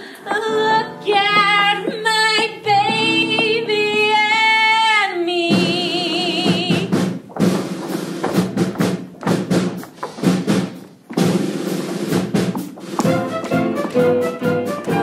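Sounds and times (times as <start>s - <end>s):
live band dance music: 5.6s - 15.0s
sharp drum kit hits: 6.5s - 15.0s.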